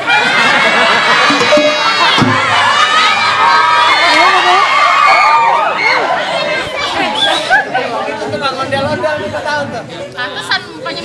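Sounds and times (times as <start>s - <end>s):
audience cheering: 0.0s - 8.0s
audience chattering: 0.0s - 11.0s.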